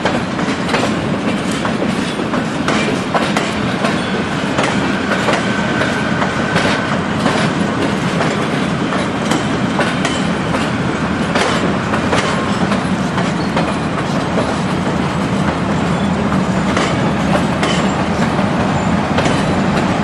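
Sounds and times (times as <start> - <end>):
train rumble: 0.0 - 20.0
train wheels clicking over rail joints: 0.0 - 20.0.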